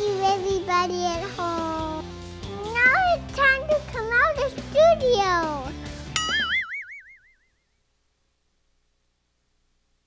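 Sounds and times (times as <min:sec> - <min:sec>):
wobbling warbling tone: 0:06.2 - 0:07.6.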